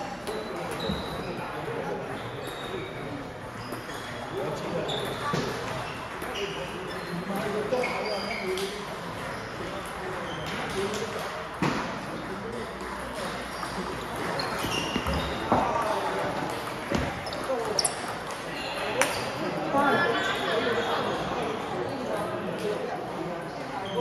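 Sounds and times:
chatter of voices in a hall: 0:00.0 - 0:24.0.

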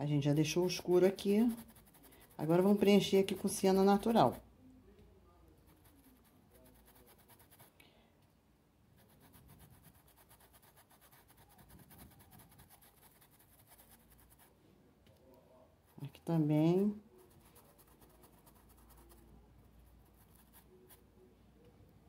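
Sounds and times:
paintbrush scratching on cloth: 0:00.2 - 0:04.4, 0:05.6 - 0:07.8, 0:09.0 - 0:14.6, 0:15.9 - 0:21.1.

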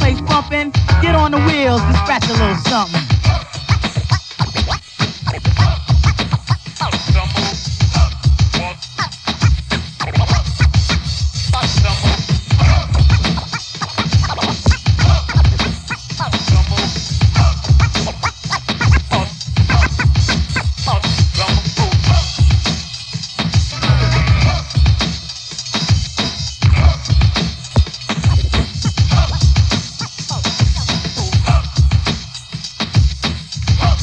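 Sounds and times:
hip-hop drum beat: 0:00.0 - 0:34.0
turntable scratching: 0:00.0 - 0:34.0.

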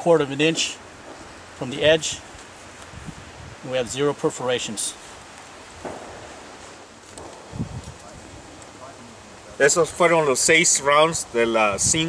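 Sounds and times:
wind on microphone: 0:01.0 - 0:03.9, 0:05.6 - 0:09.1, 0:11.2 - 0:12.0
low rustle: 0:04.8 - 0:09.6.

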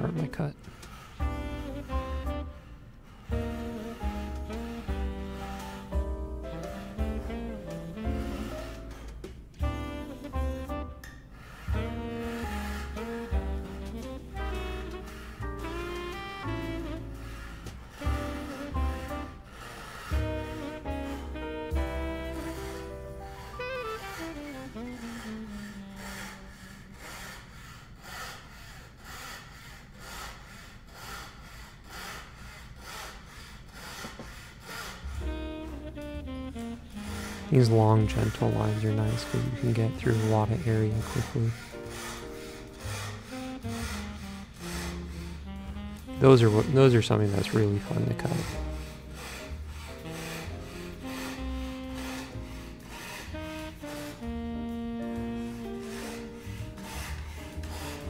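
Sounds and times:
background music with melody: 0:00.0 - 0:26.5, 0:35.1 - 0:58.0
fret saw cutting wood veneer: 0:20.1 - 0:26.9, 0:35.1 - 0:58.0.

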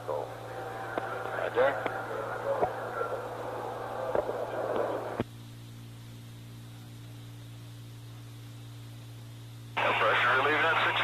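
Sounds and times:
radio hiss: 0:00.0 - 0:05.8, 0:06.6 - 0:11.0
steady low hum: 0:00.0 - 0:11.0
radio clicks: 0:00.9 - 0:02.0.

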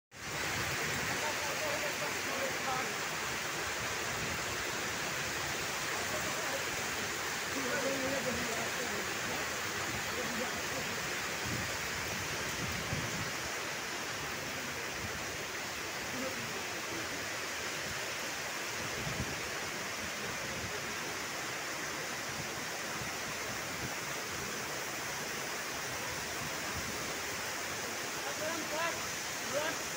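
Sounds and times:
heavy rain pouring: 0:00.1 - 0:29.9.

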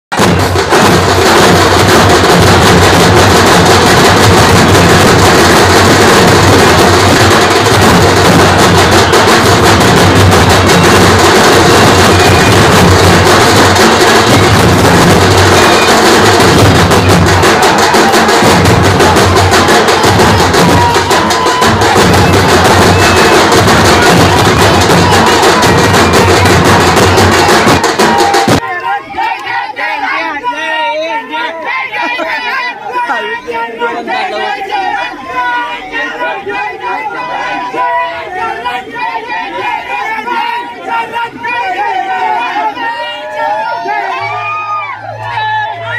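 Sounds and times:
crowd noise: 0:00.0 - 0:45.9
loud dense drumming: 0:00.1 - 0:28.6
music: 0:00.2 - 0:28.6.

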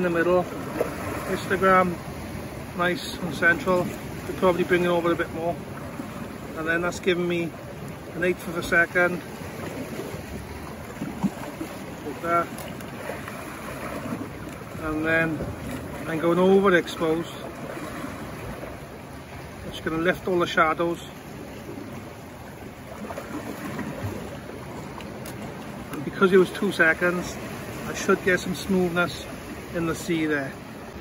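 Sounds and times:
sea washing against rocks: 0:00.0 - 0:31.0
wind buffeting microphone: 0:09.3 - 0:16.2.

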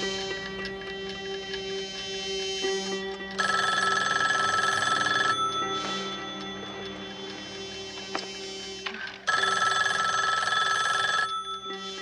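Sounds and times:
soft background music: 0:00.0 - 0:12.0
telephone bell ringing: 0:03.4 - 0:07.2, 0:09.3 - 0:12.0.

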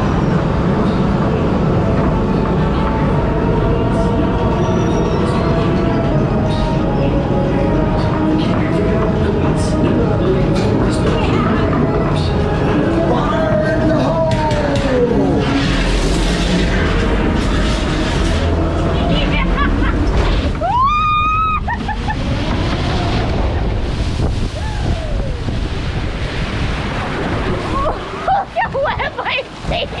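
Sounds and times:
rushing water and boat noise: 0:00.0 - 0:30.0
laughter and excited voices: 0:18.9 - 0:22.6, 0:27.8 - 0:30.0.

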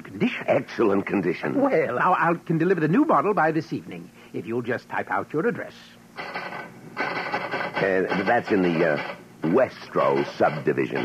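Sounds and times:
man speaking: 0:00.0 - 0:06.0, 0:07.8 - 0:11.0
steady machine sound: 0:06.1 - 0:11.0
machine typing clatter: 0:06.2 - 0:11.0.

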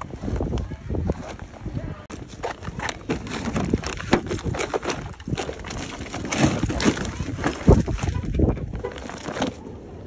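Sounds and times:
fabric bags rustling and knocking: 0:01.1 - 0:09.6.

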